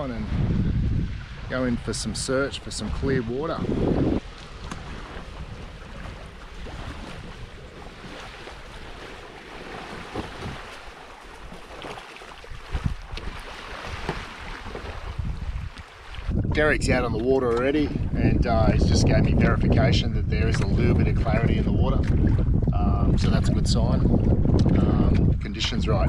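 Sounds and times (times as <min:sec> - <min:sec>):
small waves washing on beach: 0:00.0 - 0:18.4
wind rumbling on microphone: 0:00.0 - 0:26.0
kayak splashes and knocks: 0:03.5 - 0:18.1, 0:20.4 - 0:23.4.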